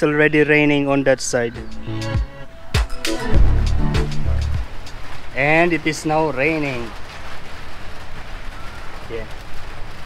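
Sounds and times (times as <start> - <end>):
steady rain falling: 0.0 - 10.0
low rumble: 3.2 - 5.3.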